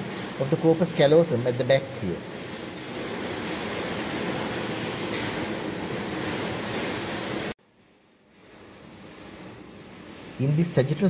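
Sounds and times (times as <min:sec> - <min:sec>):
steady rushing fan noise: 0:00.0 - 0:11.0.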